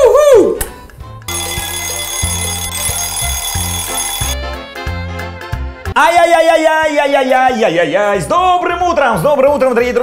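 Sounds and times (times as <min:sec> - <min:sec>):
alarm clock ringing: 0:01.3 - 0:04.4
jingle music with bass line: 0:01.3 - 0:06.3.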